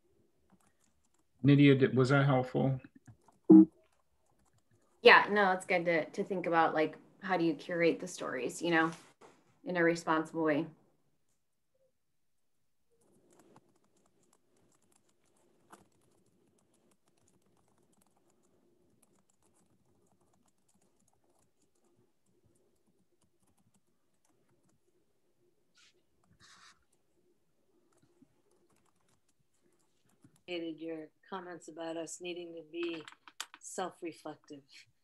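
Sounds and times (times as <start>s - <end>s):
keyboard typing: 0.4s - 1.4s, 3.0s - 5.0s, 12.9s - 25.0s, 25.7s - 30.6s, 32.7s - 33.7s.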